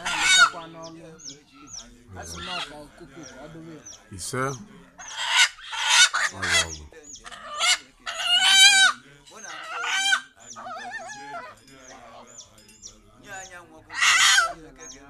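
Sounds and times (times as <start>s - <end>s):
rooster squawking: 0.0s - 12.6s, 13.3s - 15.0s.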